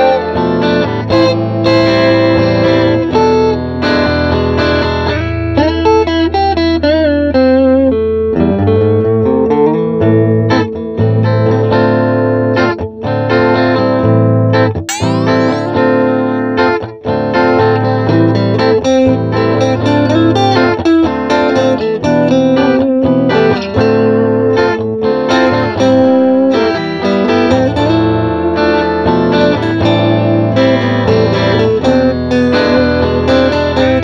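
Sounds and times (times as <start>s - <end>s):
electric guitar picked notes: 14.8s - 34.0s.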